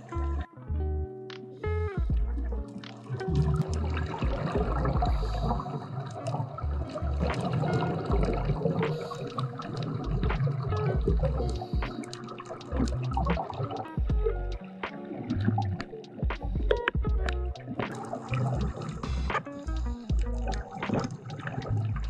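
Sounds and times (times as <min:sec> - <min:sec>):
background music with low bass: 0:00.0 - 0:22.0
underwater bubbling: 0:02.0 - 0:22.0.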